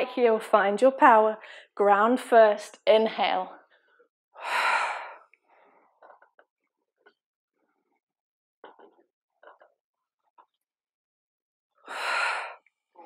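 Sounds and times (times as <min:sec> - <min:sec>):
woman breathing deeply: 0:04.4 - 0:05.9, 0:11.9 - 0:12.7.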